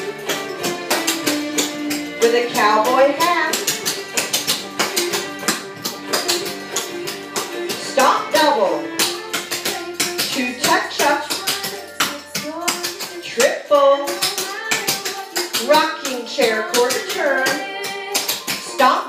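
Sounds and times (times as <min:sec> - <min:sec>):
tap shoes on hardwood floor: 0:00.0 - 0:18.8
recorded song with singing: 0:00.0 - 0:19.0.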